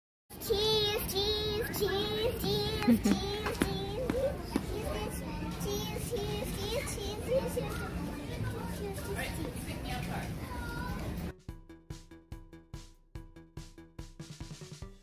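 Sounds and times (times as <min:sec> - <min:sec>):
girl sing-song chatter: 0:00.3 - 0:09.2
store background noise: 0:00.4 - 0:11.3.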